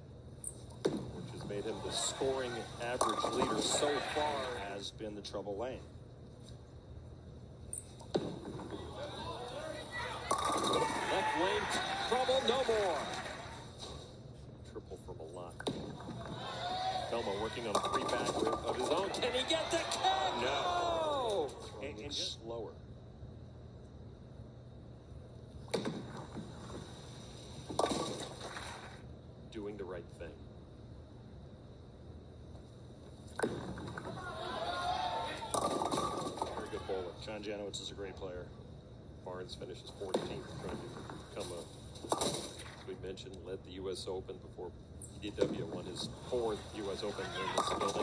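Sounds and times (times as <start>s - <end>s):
crowd cheering: 1.5s - 4.8s, 8.7s - 14.0s, 16.0s - 22.0s, 34.0s - 37.2s, 46.3s - 48.0s
bowling pins crashing: 10.0s - 13.5s, 15.6s - 20.0s, 33.4s - 36.9s
bowling ball crashing into pins: 10.1s - 13.4s, 17.2s - 19.9s, 27.7s - 29.0s, 35.2s - 36.8s, 45.4s - 48.0s
bowling ball landing on lane: 10.2s - 11.5s, 17.6s - 19.3s, 25.7s - 26.9s, 27.7s - 29.0s, 35.4s - 36.7s
person yelling: 19.2s - 21.5s, 34.1s - 35.5s.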